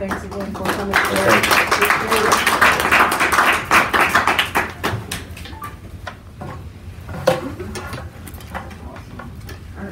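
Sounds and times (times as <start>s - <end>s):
audience applauding: 0.0s - 5.5s.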